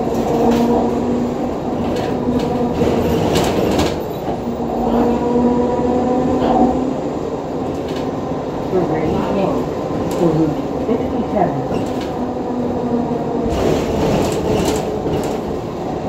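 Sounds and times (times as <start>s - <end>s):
bus drive hum and whine: 0.0s - 16.0s
road rumble: 0.0s - 16.0s.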